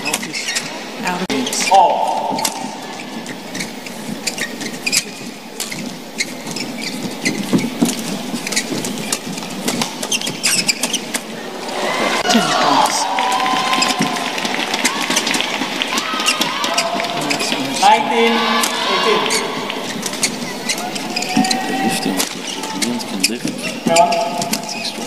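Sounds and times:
crowd noise: 0.0 - 25.0
crowd cheering and shouting: 1.7 - 3.4, 11.3 - 23.1
shoe squeaks on court: 2.3 - 11.3, 18.7 - 25.0.

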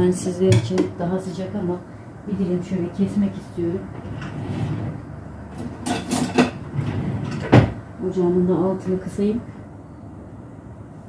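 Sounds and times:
cookware clinking and knocking: 5.6 - 6.6.

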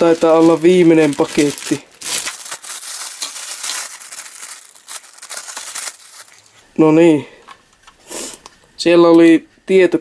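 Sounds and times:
scissors cutting plastic: 0.0 - 6.5
plastic bag crinkling: 0.0 - 6.7.

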